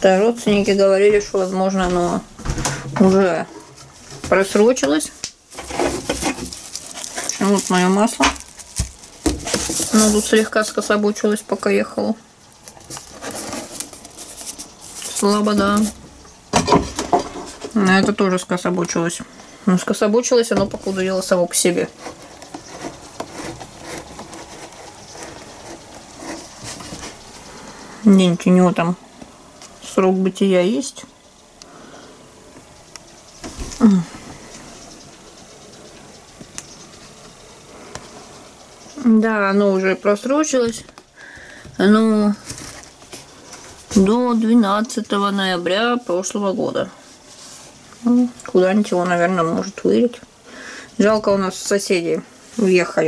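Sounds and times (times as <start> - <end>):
plastic bag rustling: 2.0 - 11.8, 12.6 - 16.2, 41.8 - 44.8.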